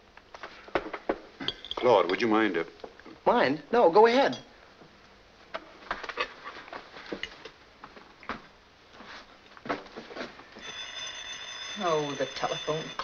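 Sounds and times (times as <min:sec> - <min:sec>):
china and cutlery clinking: 0:01.4 - 0:02.3
telephone bell ringing: 0:10.6 - 0:13.0.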